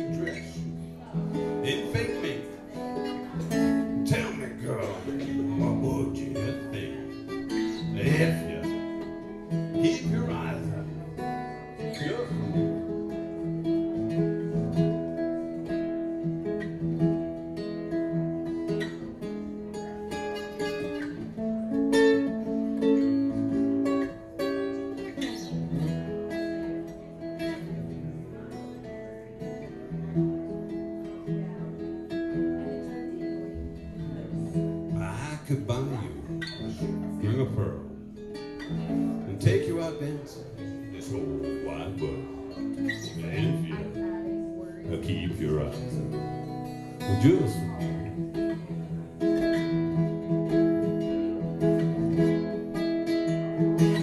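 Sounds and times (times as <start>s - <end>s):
acoustic guitar strummed and picked: 0.0s - 54.0s.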